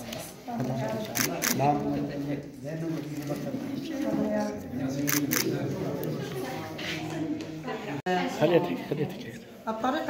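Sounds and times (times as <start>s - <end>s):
camera shutter clicks: 1.1s - 1.6s, 5.1s - 5.5s.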